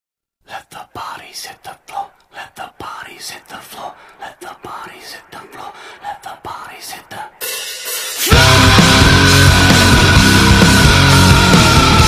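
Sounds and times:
person whispering: 0:00.4 - 0:07.5.

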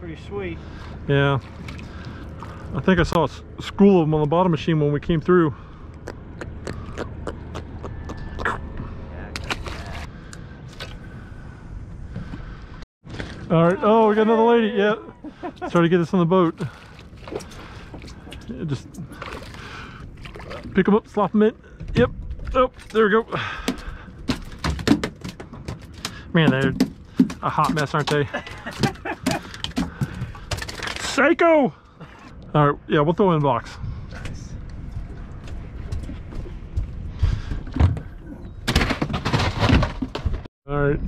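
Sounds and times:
fish slapping on boat deck: 0:23.6 - 0:31.0.

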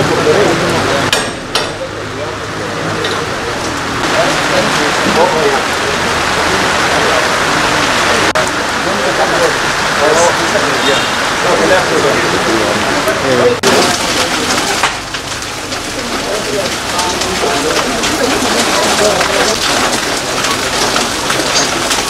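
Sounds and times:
steady rain falling: 0:00.0 - 0:01.1, 0:01.8 - 0:22.0
crowd talking: 0:00.0 - 0:22.0.

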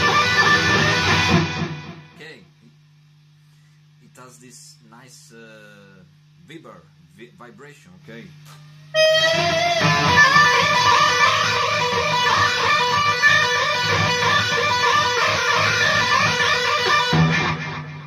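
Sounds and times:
distorted electric guitar with whammy bar: 0:00.0 - 0:02.9, 0:08.4 - 0:18.0.

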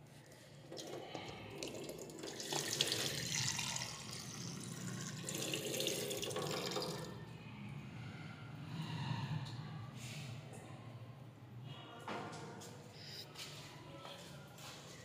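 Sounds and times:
water running into plastic cup: 0:01.6 - 0:07.1.

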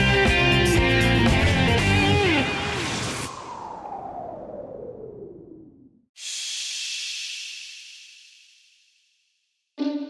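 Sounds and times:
falling sweep: 0:01.4 - 0:09.2
steam-like hiss: 0:06.2 - 0:09.2.

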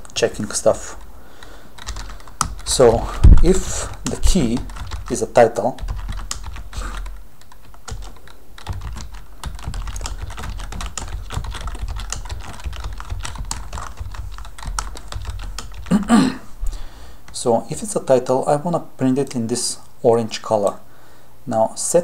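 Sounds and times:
low steady hum: 0:00.0 - 0:21.6
computer keyboard typing: 0:00.8 - 0:16.0.

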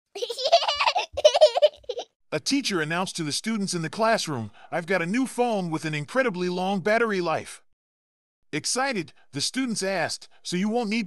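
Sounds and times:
high-pitched laughter: 0:00.2 - 0:02.1.

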